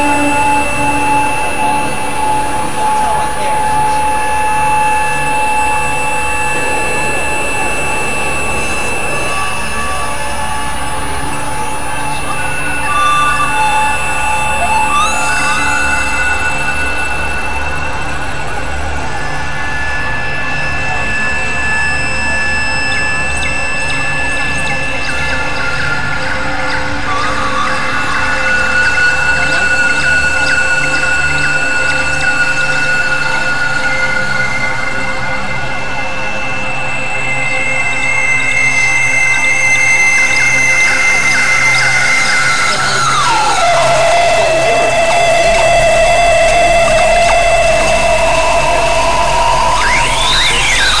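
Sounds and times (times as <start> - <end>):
synthesizer drone music: 0.0 - 51.0.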